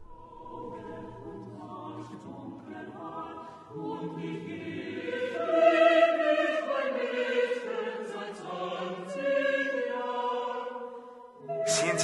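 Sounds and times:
choir-like singing voices: 0.0s - 12.0s.

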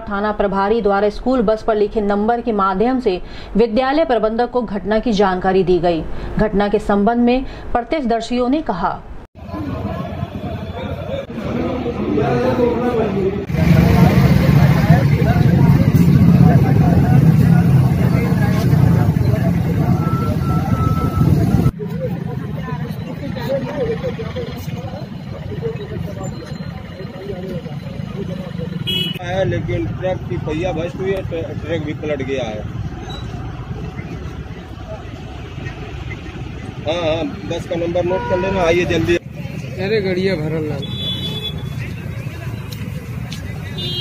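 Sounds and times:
road traffic: 0.0s - 8.0s, 8.6s - 44.0s
faint voices: 9.4s - 31.8s
crowd of people talking: 9.4s - 44.0s
man speaking: 36.8s - 39.2s.

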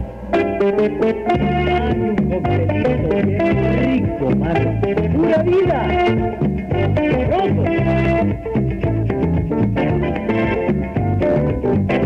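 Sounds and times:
tropical dance band playing: 0.0s - 12.0s.

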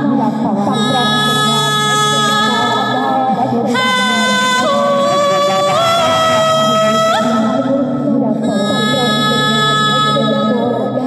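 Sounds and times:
looped vocal layers: 0.0s - 11.0s
woman singing high note: 0.0s - 11.0s.

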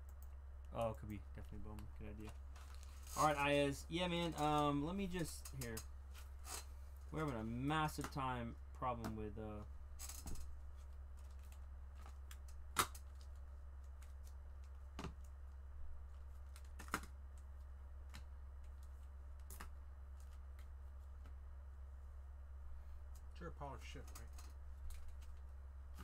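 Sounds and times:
steady low hum: 0.0s - 26.0s.

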